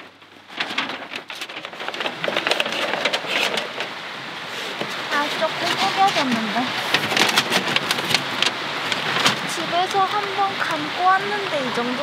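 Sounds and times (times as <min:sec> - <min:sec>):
stream rushing: 0:00.0 - 0:12.0.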